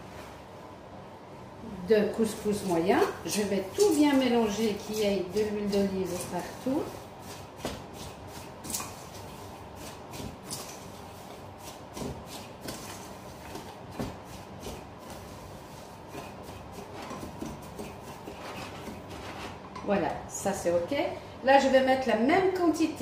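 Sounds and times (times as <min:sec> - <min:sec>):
couscous rustling in a bowl: 0:02.2 - 0:19.6.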